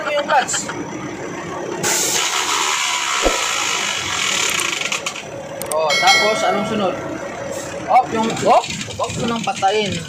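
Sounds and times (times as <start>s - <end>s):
single click: 3.2s - 3.6s.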